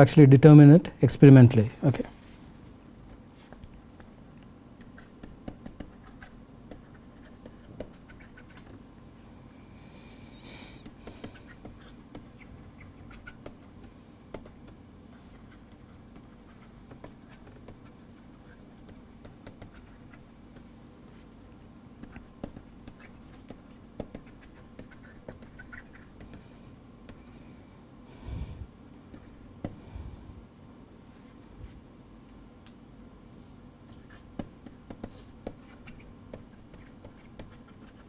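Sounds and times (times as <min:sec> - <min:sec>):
faint steady hum: 0:00.0 - 0:38.0
stylus tapping and scratching screen: 0:04.8 - 0:08.8, 0:10.8 - 0:20.7, 0:21.6 - 0:26.4, 0:29.1 - 0:29.8, 0:33.9 - 0:38.0.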